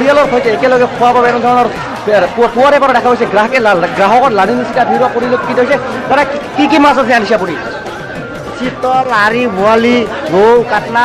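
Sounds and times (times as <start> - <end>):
background music: 0.0 - 11.0
voices talking: 0.0 - 11.0.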